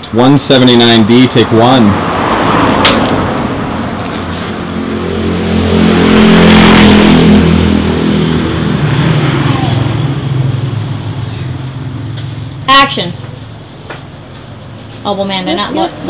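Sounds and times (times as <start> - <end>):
motor vehicle passing close: 0.6 - 16.0.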